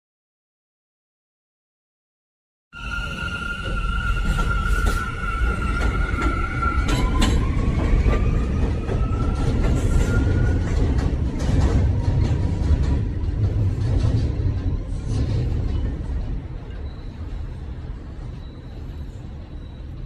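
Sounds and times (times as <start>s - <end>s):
subway train rumbling: 2.8s - 20.0s
wheels clicking over rail joints: 4.3s - 17.6s.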